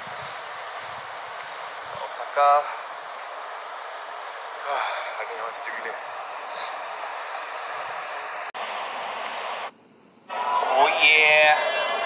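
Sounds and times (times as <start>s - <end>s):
train running: 0.0s - 9.7s.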